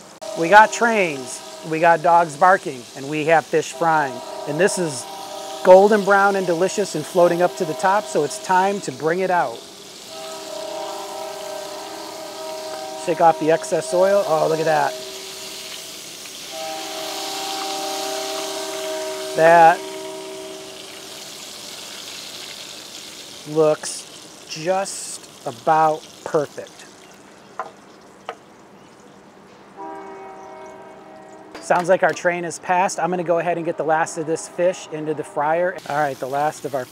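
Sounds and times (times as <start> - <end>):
train horn chord: 0.0 - 22.4, 29.7 - 31.8, 33.3 - 36.4
fish frying in hot oil: 0.0 - 29.3, 35.8 - 36.9.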